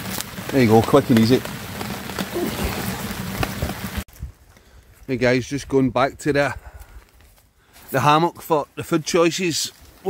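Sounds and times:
steady rain pattering: 0:00.0 - 0:05.4, 0:06.7 - 0:10.0.

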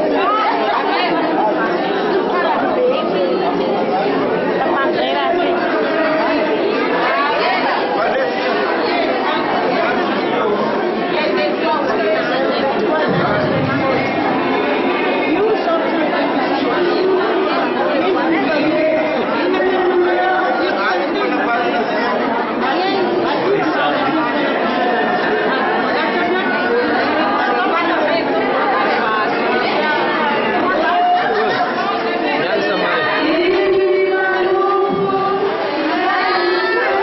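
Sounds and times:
crowd chattering: 0:00.0 - 0:37.0.

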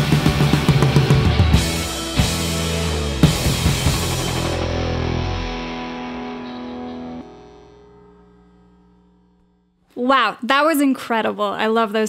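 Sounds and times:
distorted electric guitar chord: 0:00.0 - 0:09.8.

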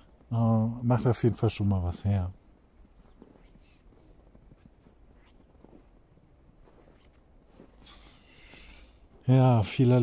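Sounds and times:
footsteps in snow: 0:01.1 - 0:10.0.

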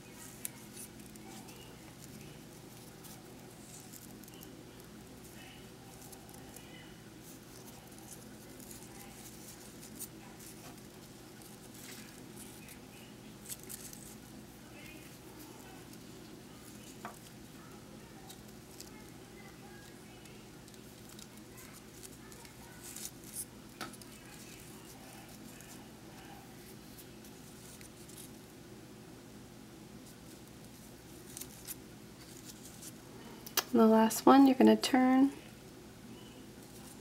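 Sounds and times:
ribbon rustling: 0:00.0 - 0:28.5, 0:30.0 - 0:33.8, 0:36.5 - 0:37.0
steady low hum: 0:00.0 - 0:37.0.

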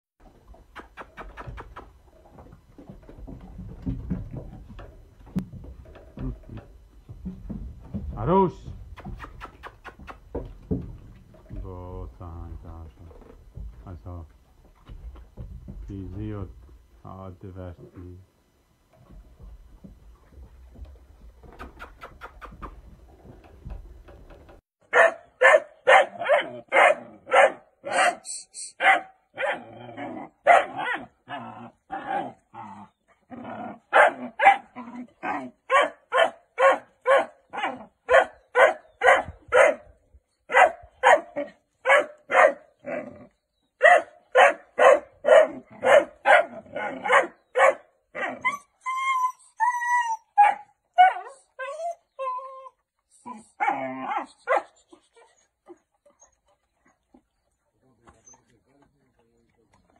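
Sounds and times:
dog barking: 0:24.9 - 0:29.6, 0:30.4 - 0:31.1, 0:33.9 - 0:34.7, 0:35.7 - 0:39.9, 0:40.5 - 0:42.7, 0:43.8 - 0:48.3, 0:53.6 - 0:54.8
dog drawn-out sliding calls: 0:27.9 - 0:28.8.

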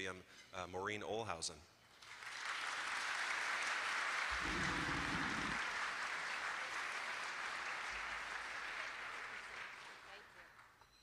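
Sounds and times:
audience applauding: 0:02.0 - 0:10.3.

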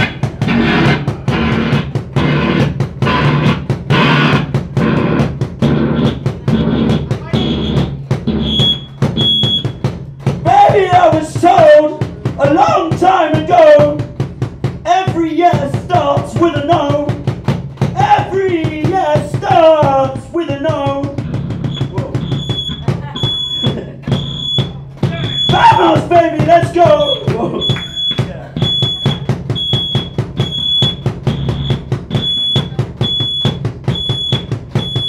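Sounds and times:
low electronic drone: 0:00.0 - 0:09.6, 0:21.2 - 0:25.6
drum kit beat: 0:00.0 - 0:35.0
rock band playing: 0:00.0 - 0:35.0
high piercing tone: 0:07.4 - 0:09.8, 0:21.6 - 0:26.0, 0:26.8 - 0:35.0.

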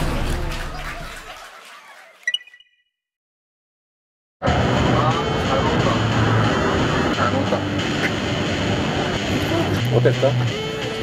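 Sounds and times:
steady outdoor rush: 0:04.4 - 0:11.0
men talking: 0:07.1 - 0:07.8, 0:09.7 - 0:10.6.

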